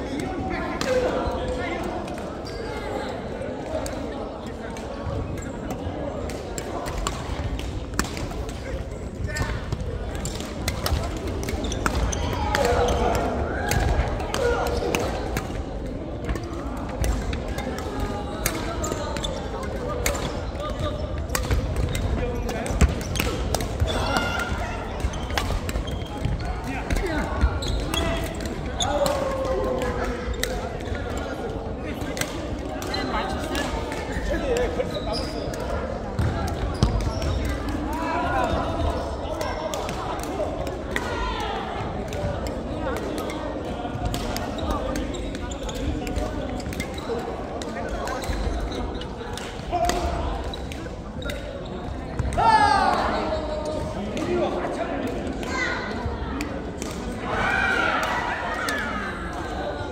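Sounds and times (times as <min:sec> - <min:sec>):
voices in a hall: 0:00.0 - 0:59.9
rackets striking shuttlecock: 0:05.7 - 0:31.2, 0:42.0 - 0:51.5.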